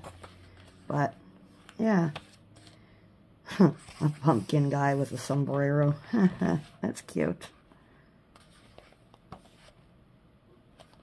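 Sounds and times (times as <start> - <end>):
page turning: 0.0 - 0.9, 1.6 - 2.8, 3.8 - 5.9, 8.4 - 9.8, 10.8 - 11.0.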